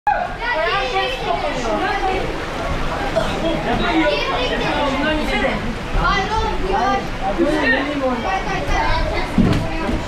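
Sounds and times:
children's voices: 0:00.3 - 0:10.0.

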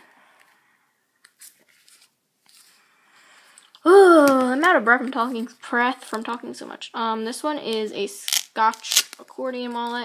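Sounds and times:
duct tape crinkling: 0:08.2 - 0:10.0.

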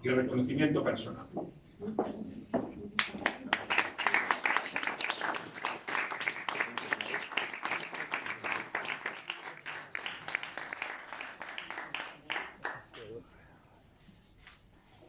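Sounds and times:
group applauding: 0:03.0 - 0:13.4.

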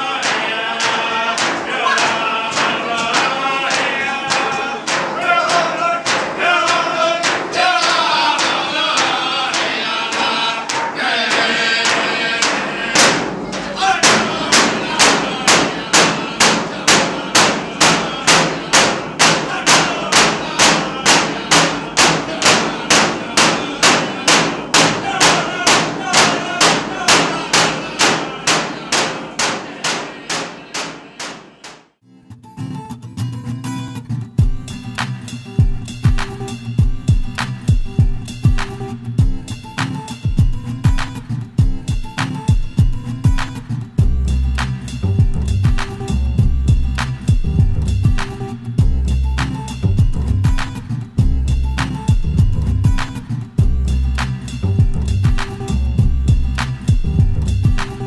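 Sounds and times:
frame drums beaten in unison: 0:00.0 - 0:31.9, 0:34.4 - 0:58.0
group singing: 0:00.0 - 0:31.9.

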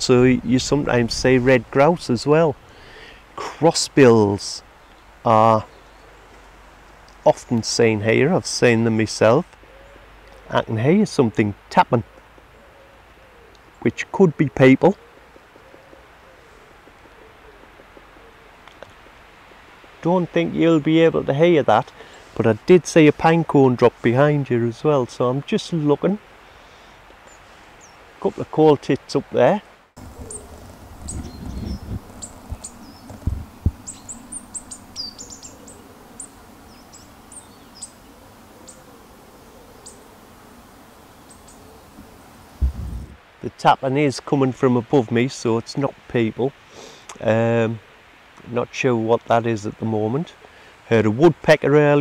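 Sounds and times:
faint tapping in trees: 0:04.6 - 0:07.8, 0:09.4 - 0:10.5, 0:12.0 - 0:14.0, 0:14.6 - 0:20.1, 0:26.3 - 0:29.0, 0:29.9 - 0:43.3
low rumbling: 0:30.0 - 0:38.6, 0:41.9 - 0:43.2
high-pitched bird calls: 0:30.0 - 0:40.2
dull knocks: 0:42.6 - 0:43.2.

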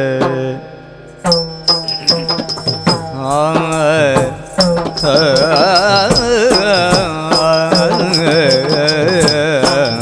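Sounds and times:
steady drone: 0:00.4 - 0:10.0
drum strokes: 0:01.2 - 0:10.0
small hand cymbals ringing: 0:01.2 - 0:10.0.

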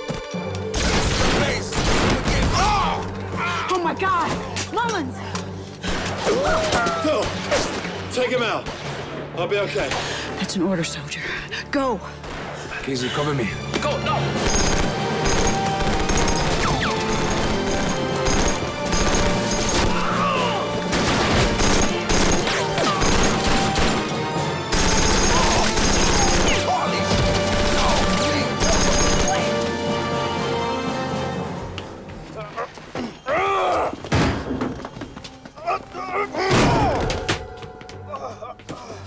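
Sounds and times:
background music score: 0:00.0 - 0:39.0.

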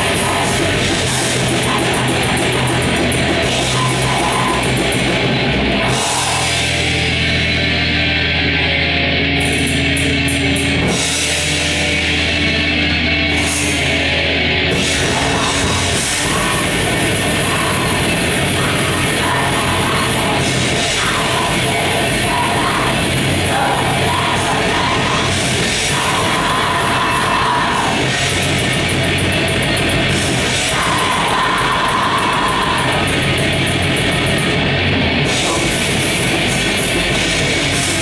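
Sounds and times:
drum kit: 0:00.0 - 0:08.3, 0:09.4 - 0:38.0
distorted electric guitars: 0:00.0 - 0:38.0.

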